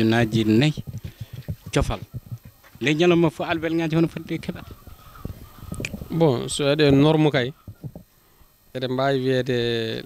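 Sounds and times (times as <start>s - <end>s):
chickens clucking faintly: 0.3s - 8.2s.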